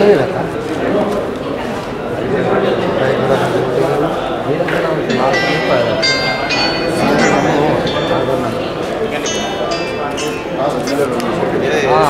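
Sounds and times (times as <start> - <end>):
crowd chatter: 0.0 - 12.0
background music: 5.1 - 12.0.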